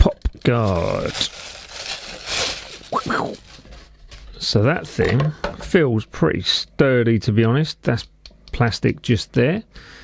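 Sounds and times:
plastic bag crinkling: 0:00.4 - 0:04.3.

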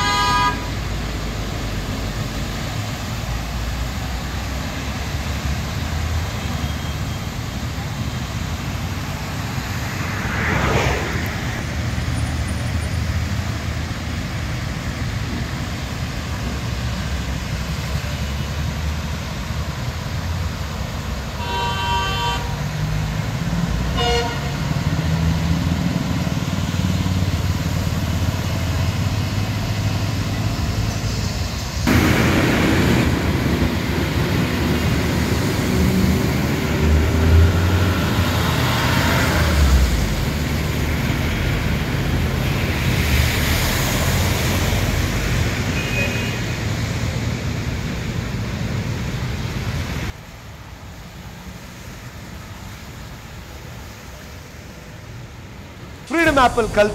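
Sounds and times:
vehicle horn honking: 0:00.0 - 0:00.7, 0:21.4 - 0:22.6, 0:24.0 - 0:24.6
engines rumbling: 0:00.0 - 0:21.5, 0:22.4 - 0:56.9
water spray from vehicles: 0:00.0 - 0:56.9
tyres swishing through water: 0:00.6 - 0:21.3, 0:22.5 - 0:56.9.

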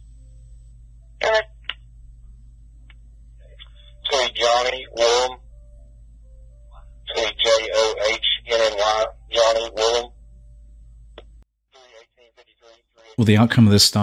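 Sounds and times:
steady low hum: 0:00.0 - 0:14.0
garbled radio transmissions: 0:01.2 - 0:01.8, 0:03.4 - 0:05.4, 0:07.1 - 0:10.2, 0:11.8 - 0:13.4.

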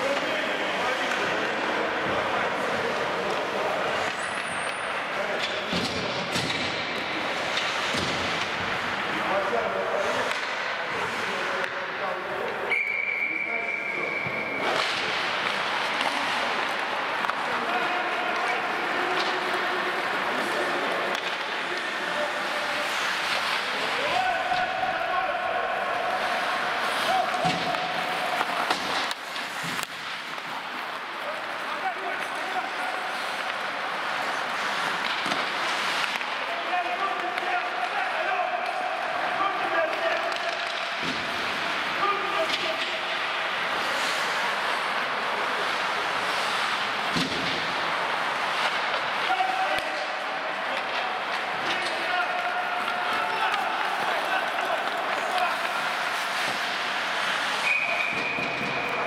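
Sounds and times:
skates scraping ice: 0:00.0 - 0:59.0
players shouting: 0:14.6 - 0:59.0.

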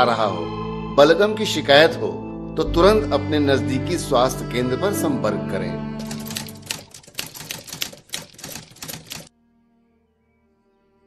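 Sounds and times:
typewriter keystrokes: 0:06.0 - 0:09.3.

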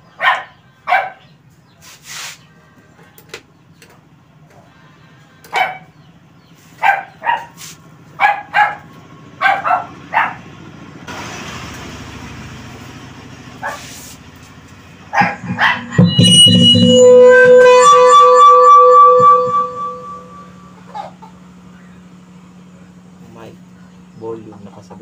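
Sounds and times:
dog barking: 0:00.1 - 0:01.3, 0:05.5 - 0:05.9, 0:06.8 - 0:07.6, 0:08.2 - 0:10.5, 0:13.6 - 0:14.0.

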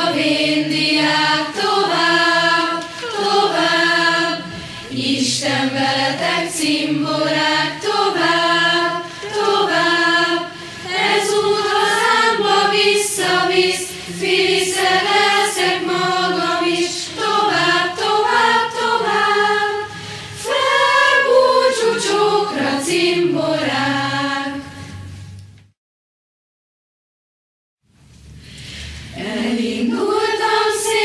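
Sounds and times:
choir singing: 0:00.0 - 0:25.0, 0:29.1 - 0:31.0.

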